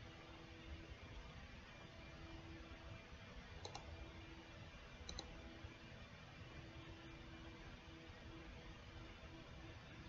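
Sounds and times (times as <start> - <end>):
faint steady hum: 0.0 - 10.0
computer mouse double clicking: 3.6 - 3.9, 5.1 - 5.3.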